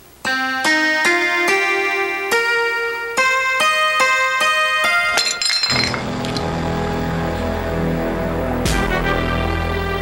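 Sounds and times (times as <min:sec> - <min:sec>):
tableware clattering on floor: 0:05.1 - 0:06.6
low music drone: 0:05.8 - 0:10.0.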